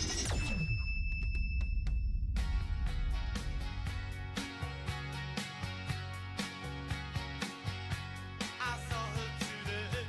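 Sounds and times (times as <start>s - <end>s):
electronic jingle: 0.0s - 4.4s.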